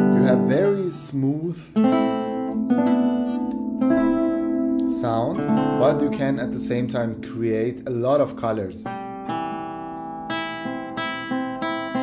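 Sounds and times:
classical guitar plucked notes: 0.0 - 12.0.

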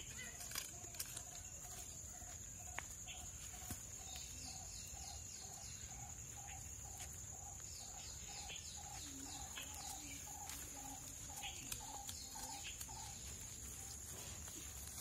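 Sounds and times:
bird chirps: 0.0 - 15.0
high insect whine: 0.0 - 15.0.

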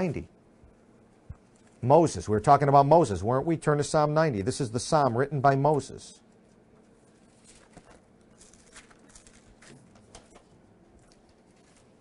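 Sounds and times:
thin pages being turned: 6.5 - 12.0.

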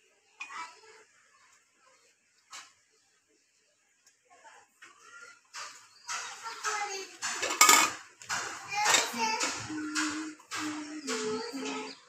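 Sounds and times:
kitchenware clink: 6.1 - 11.3.

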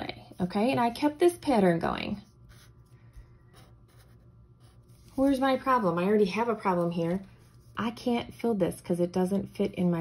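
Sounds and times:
low room hum: 0.0 - 10.0
marker drawing on paper: 2.1 - 5.5.

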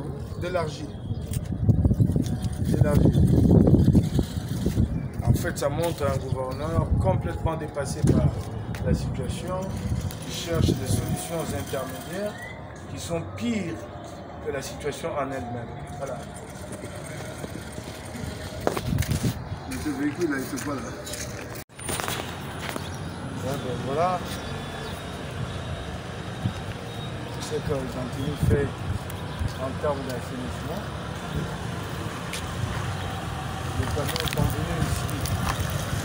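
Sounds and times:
street background noise: 0.0 - 36.0
vehicle engine humming: 7.6 - 36.0.

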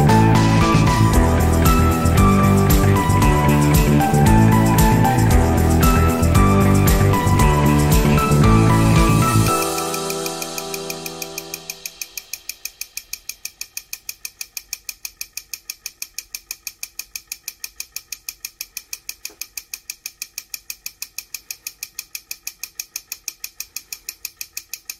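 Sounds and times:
model air compressor clicking: 12.5 - 24.9.

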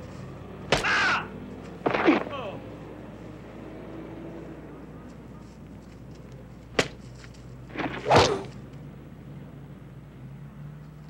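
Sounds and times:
punch impact: 1.8 - 2.4, 7.7 - 8.5
man yelling in pain: 2.3 - 2.6.

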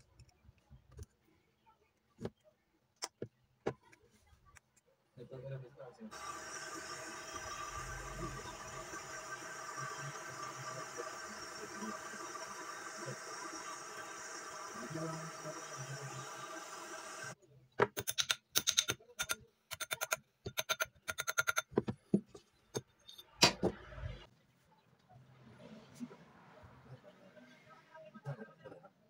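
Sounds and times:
gas torch flame hissing: 6.1 - 17.4.

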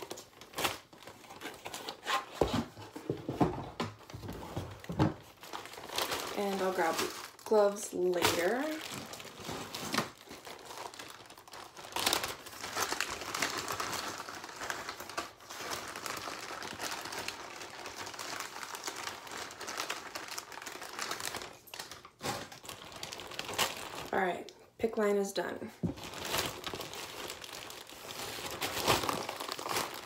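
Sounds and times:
plastic bag crinkling: 4.0 - 24.7, 25.8 - 30.0.

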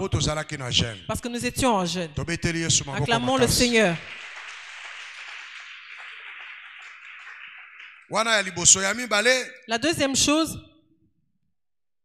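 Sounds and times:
congregation applauding: 2.9 - 9.4.

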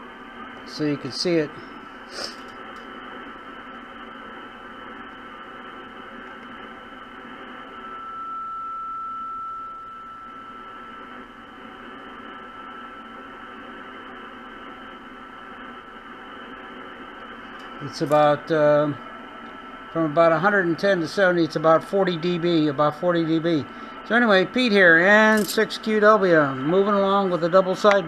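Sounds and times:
radio band noise hiss: 0.7 - 2.5
thin steady whistle: 7.3 - 13.4.

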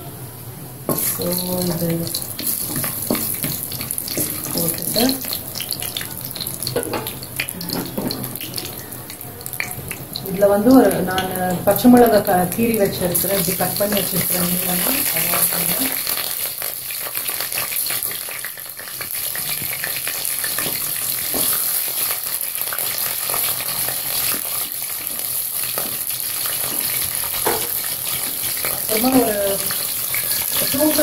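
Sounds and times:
chillies sizzling in hot oil: 0.9 - 31.0
pan being stirred: 0.9 - 31.0.

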